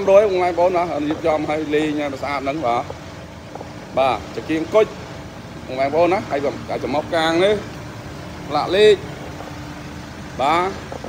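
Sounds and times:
van engine idling: 0.0 - 11.0.

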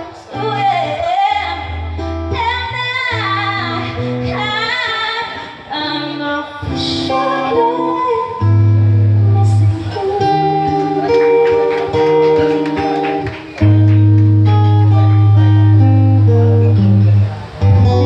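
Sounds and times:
woman singing: 0.0 - 8.6, 9.2 - 12.0
acoustic guitar chords: 0.0 - 18.0
bass line: 8.4 - 18.0.

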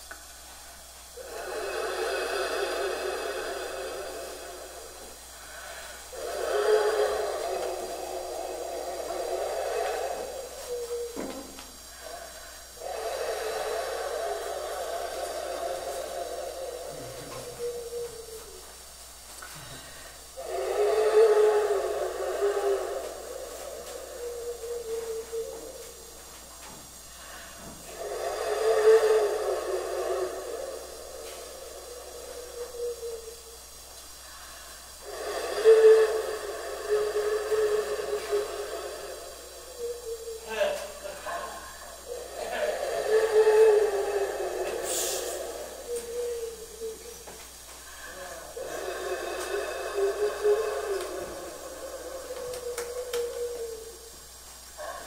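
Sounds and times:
breathy hissing whistle: 0.0 - 55.0.

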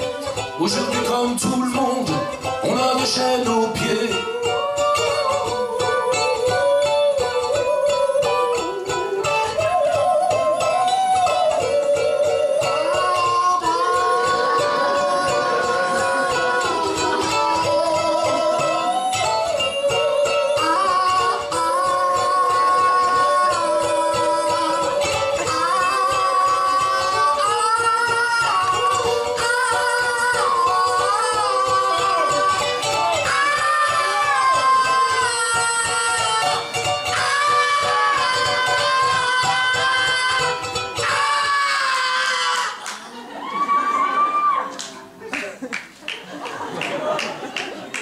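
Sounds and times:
live band playing: 0.0 - 45.2, 45.8 - 48.0.

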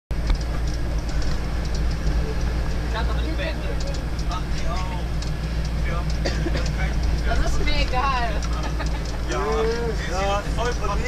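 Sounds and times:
engine and road noise: 0.1 - 11.0
light clicks: 3.7 - 7.5.

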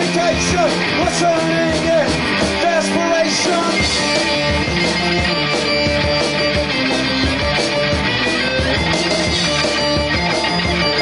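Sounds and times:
bass guitar: 0.0 - 11.0
loud electric guitar: 0.0 - 11.0
steady drumbeat: 0.0 - 11.0.

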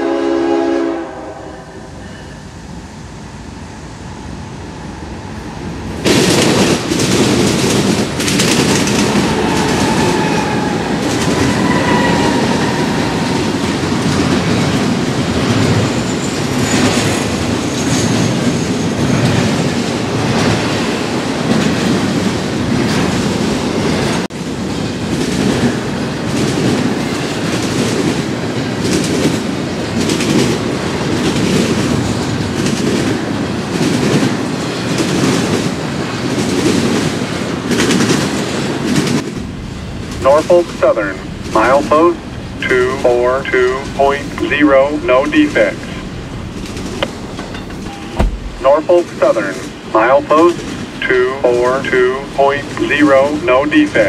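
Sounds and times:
train wheels rumbling on rail: 0.0 - 54.0
high wheel squeals: 9.3 - 13.7
wheels clacking over rail joints: 46.0 - 48.6.

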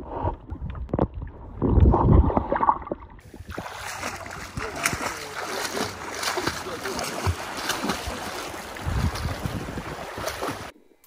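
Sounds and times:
person swimming with splashes: 2.2 - 10.8.

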